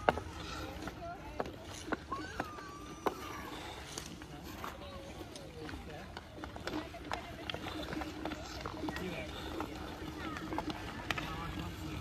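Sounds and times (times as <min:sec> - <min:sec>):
faint distant voices: 0:00.0 - 0:12.0.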